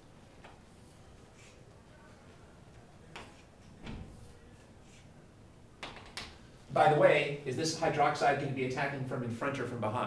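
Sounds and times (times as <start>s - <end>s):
faint room hiss: 0.0s - 10.0s.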